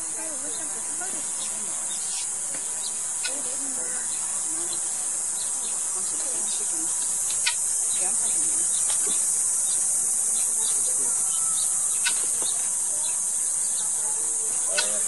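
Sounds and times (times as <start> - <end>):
faint distant voices: 0.0 - 15.0
insect chorus drone: 0.0 - 15.0.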